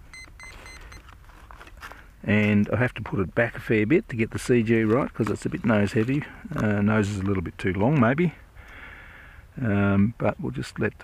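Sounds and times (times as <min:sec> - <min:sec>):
short electronic beeps: 0:00.1 - 0:01.0
faint handling noise: 0:00.1 - 0:08.2.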